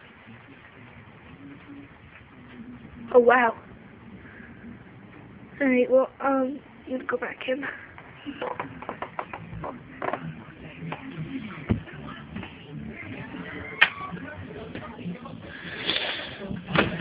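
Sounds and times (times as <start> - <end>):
steady background noise: 0.0 - 17.0.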